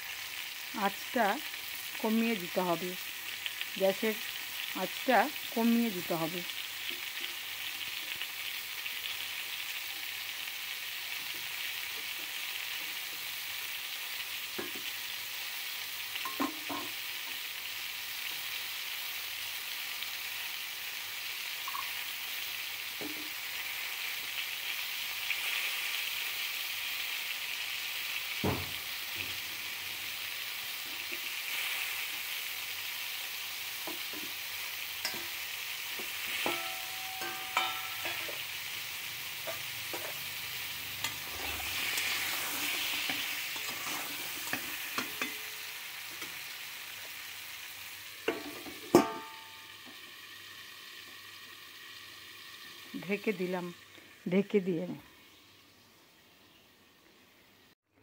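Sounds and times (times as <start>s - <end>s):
vegetables sizzling in oil: 0.0s - 57.8s.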